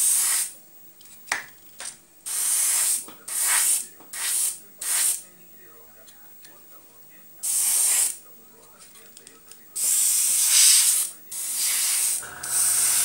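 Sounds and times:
airbrush spraying hiss: 0.0s - 0.5s, 2.3s - 5.2s, 7.4s - 8.2s, 9.8s - 13.0s
compressor motor hum: 12.2s - 13.0s.

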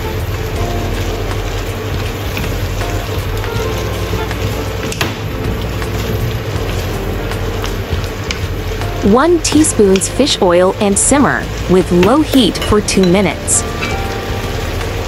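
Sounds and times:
wok sizzling: 0.0s - 15.0s
wooden spatula stirring in pan: 0.0s - 15.0s.

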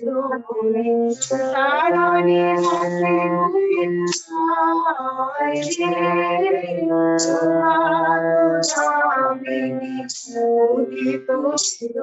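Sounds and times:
woman singing devotional song: 0.0s - 12.0s.

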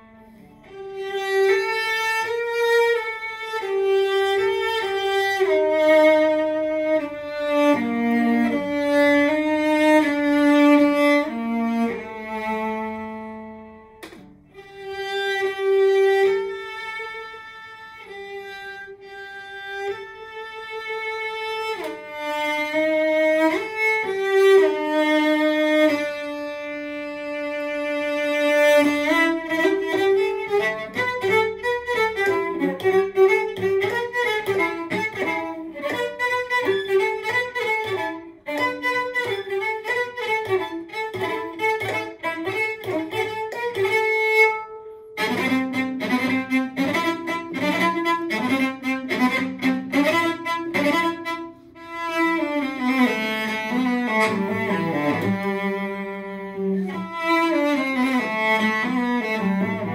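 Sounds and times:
bowed cello: 0.0s - 59.9s.

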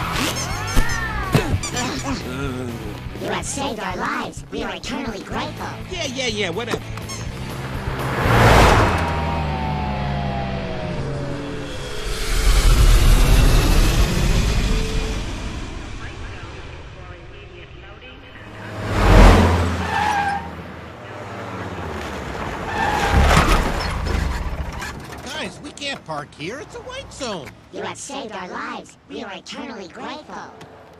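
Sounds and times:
background music: 0.0s - 8.8s
tires skidding: 6.5s - 15.9s, 18.5s - 27.7s.

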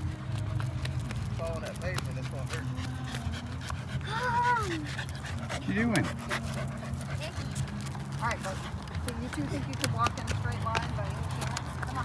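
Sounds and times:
dog panting: 0.5s - 12.0s.

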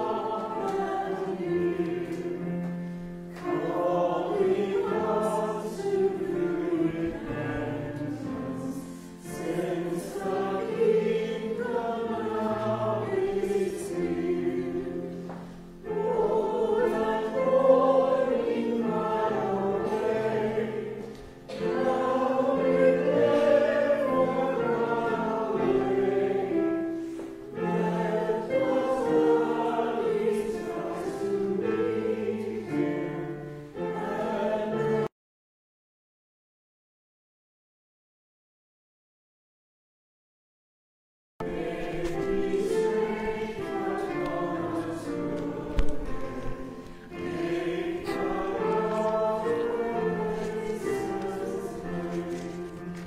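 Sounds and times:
congregation singing a hymn: 0.0s - 35.1s, 41.4s - 53.0s.

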